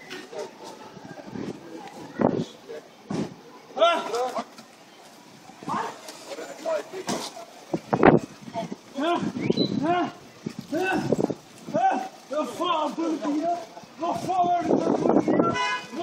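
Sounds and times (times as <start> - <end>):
man shouting: 9.0 - 11.1.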